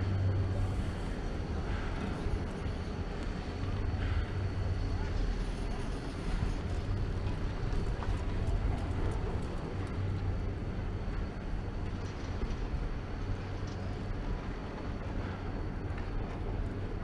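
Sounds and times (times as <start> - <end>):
chairlift low rumble: 0.0 - 17.0.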